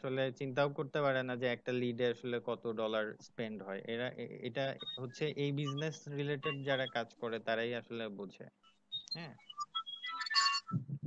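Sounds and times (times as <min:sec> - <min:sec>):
person speaking: 0:00.0 - 0:08.5, 0:09.1 - 0:09.4.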